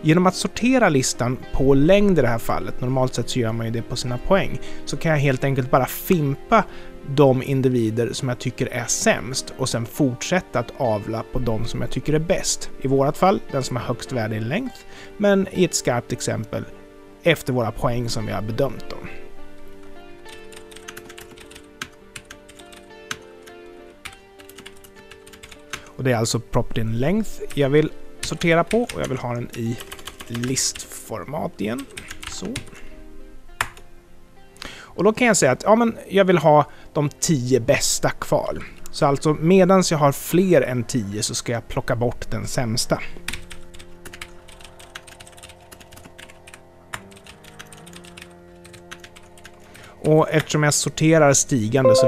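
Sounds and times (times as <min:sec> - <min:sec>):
quiet background music: 0:00.0 - 0:52.0
keyboard typing: 0:20.5 - 0:23.5, 0:24.1 - 0:25.9, 0:29.8 - 0:30.6, 0:44.1 - 0:49.6.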